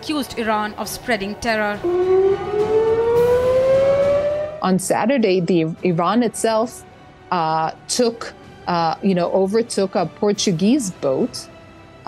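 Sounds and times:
air-raid siren rising in pitch: 1.8s - 4.9s.

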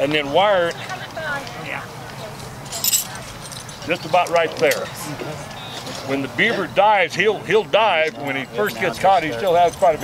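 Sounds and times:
metal chain jingling: 2.6s - 4.0s.

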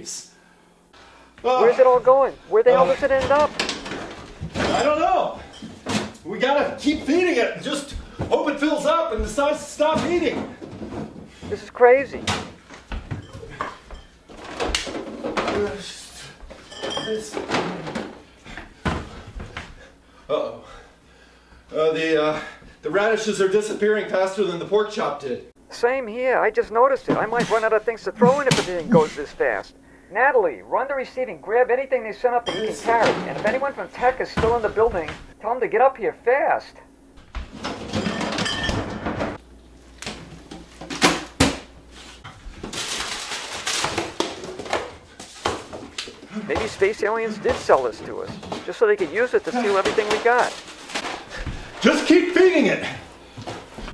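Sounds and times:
household items clattering: 2.7s - 6.2s, 7.9s - 19.5s, 37.4s - 39.4s, 42.2s - 52.2s
rustling and scraping: 41.8s - 51.8s.

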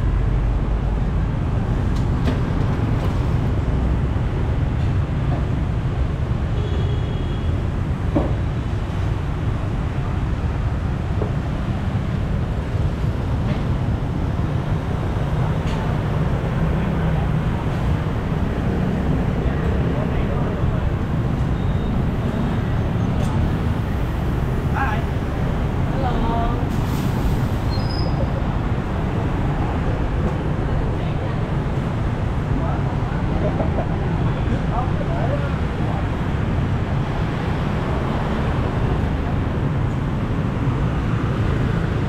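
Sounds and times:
motorbikes and cars engine rumble: 0.0s - 42.0s.

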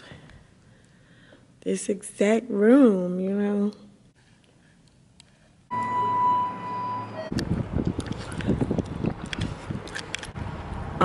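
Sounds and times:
elevator beep: 5.7s - 7.4s
short lower tone: 5.7s - 7.4s
wind rumbling on microphone: 7.3s - 11.0s.

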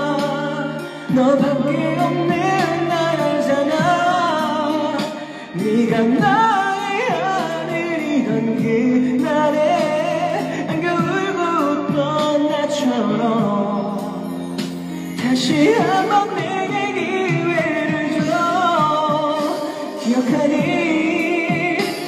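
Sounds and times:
karaoke backing track: 0.0s - 22.0s
man singing into microphone: 0.0s - 22.0s.

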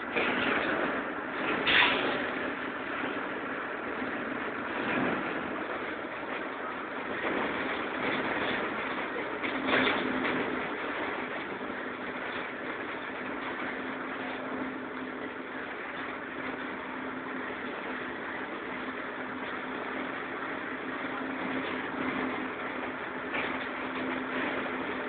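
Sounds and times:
bus engine drone: 0.0s - 25.0s
road noise: 0.0s - 25.0s.

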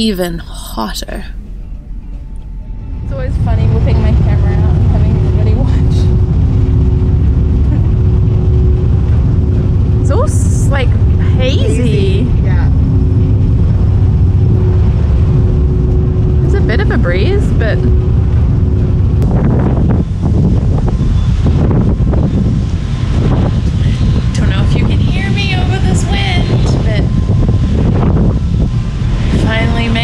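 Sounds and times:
ferry engine rumble: 0.0s - 30.0s
machinery hum: 0.0s - 30.0s
wind buffeting microphone: 1.4s - 30.0s.

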